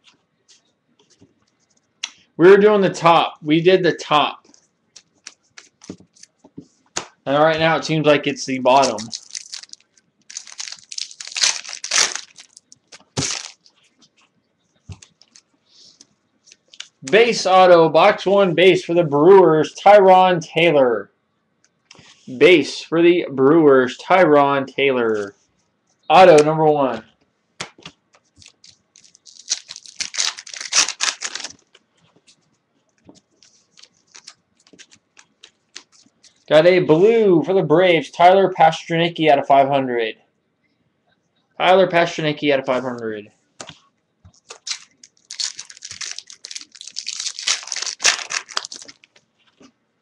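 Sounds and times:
cards handled: 5.0s - 7.2s, 8.7s - 13.7s, 33.0s - 36.4s, 43.6s - 49.7s
wrappers torn and crinkled: 8.7s - 13.8s, 14.9s - 15.5s, 28.3s - 31.8s, 33.6s - 36.5s, 44.4s - 49.2s.

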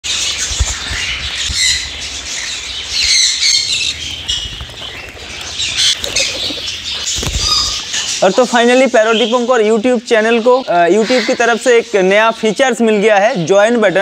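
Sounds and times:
parrots chirping and squawking: 0.1s - 12.2s
wings flapping: 0.2s - 8.2s.

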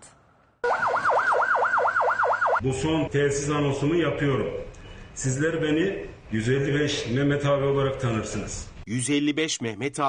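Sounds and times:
police siren yelping: 0.6s - 2.6s.

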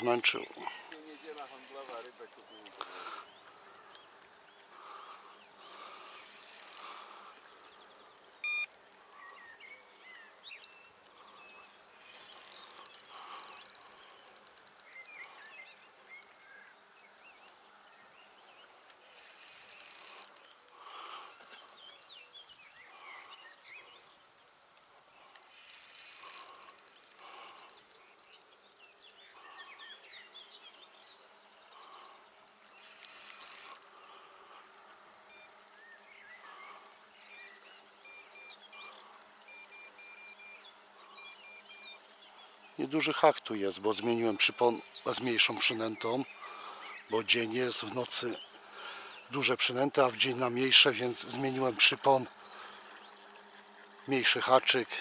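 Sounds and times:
bird chirps: 0.0s - 55.0s
insects buzzing: 0.0s - 55.0s
short beep: 8.4s - 8.7s.

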